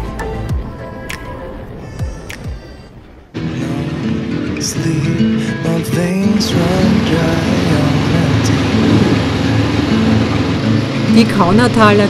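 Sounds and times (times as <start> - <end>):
motorcycle engines pulling away: 3.3 - 12.0.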